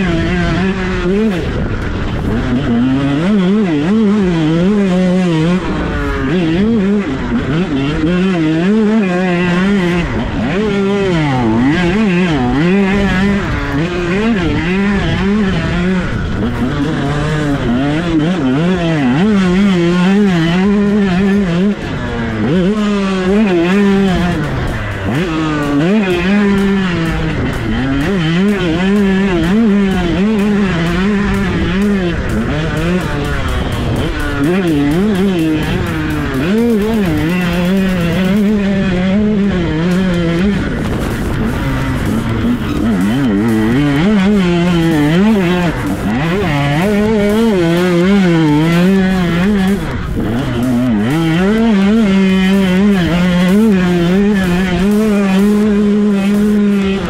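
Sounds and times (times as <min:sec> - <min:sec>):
two-stroke engine revving: 0:00.0 - 0:57.0.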